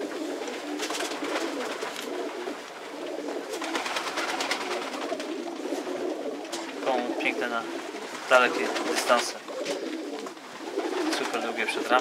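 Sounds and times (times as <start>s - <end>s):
pigeons cooing: 0.0s - 12.0s
rustling: 0.1s - 12.0s.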